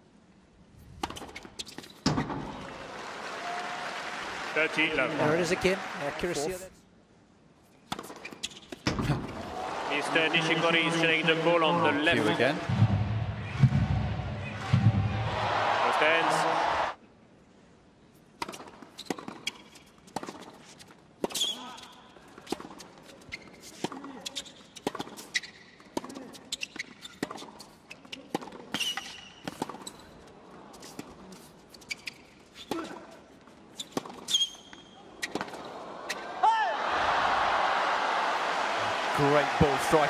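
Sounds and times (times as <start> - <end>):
shoe squeaks: 1.1 - 2.3, 8.0 - 8.9, 20.7 - 22.0, 23.0 - 30.2, 30.8 - 32.9, 33.7 - 36.2
crowd applause: 2.6 - 6.5, 9.4 - 17.0, 36.7 - 40.0.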